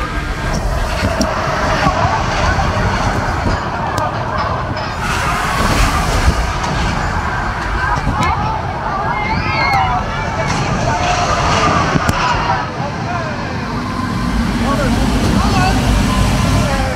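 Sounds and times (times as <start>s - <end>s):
amusement ride rumbling: 0.0s - 16.9s
voices of riders: 0.0s - 16.9s.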